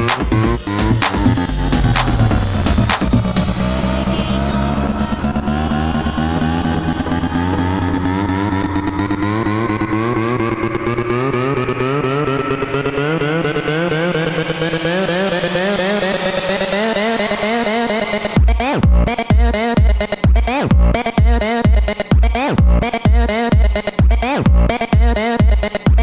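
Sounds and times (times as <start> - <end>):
deep bass: 0.0 - 26.0
house music build-up: 0.0 - 26.0.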